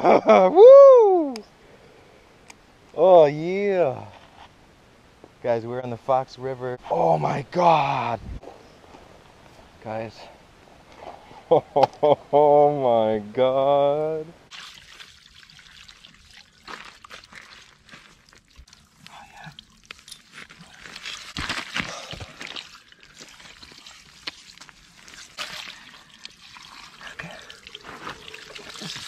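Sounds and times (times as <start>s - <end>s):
water splashing and trickling: 14.5s - 29.0s.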